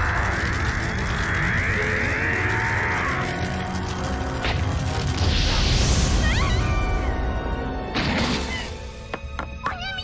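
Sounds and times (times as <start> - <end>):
battle soundtrack music: 0.0 - 8.8.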